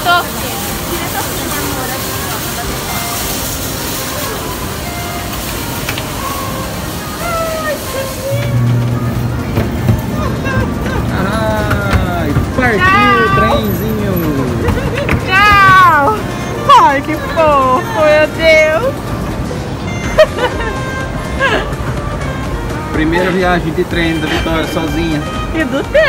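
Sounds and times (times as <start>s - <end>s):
mall hubbub: 0.0s - 26.0s
low steady hum: 4.3s - 23.0s.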